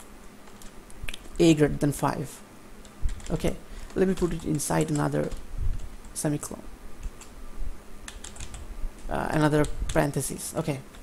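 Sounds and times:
computer keyboard keystrokes: 7.0 - 7.4, 8.1 - 8.6.

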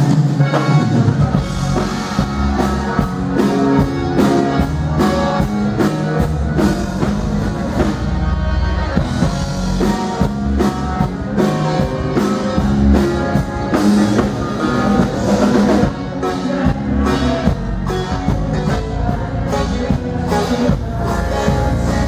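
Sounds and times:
bass: 0.0 - 22.0
button accordion lead: 0.0 - 22.0
drum kit beat: 0.0 - 22.0
guitar: 0.0 - 22.0.

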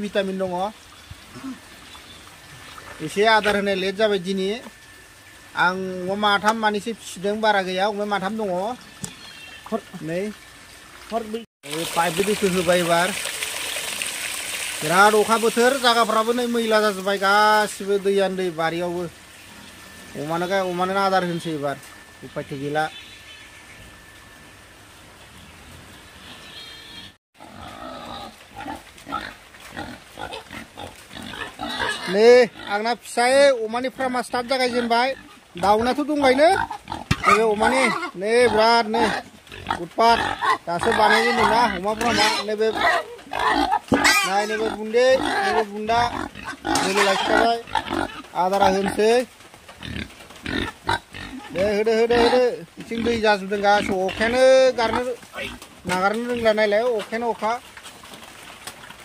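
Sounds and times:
pigs grunting: 26.5 - 32.9, 34.0 - 49.2, 49.8 - 56.8.

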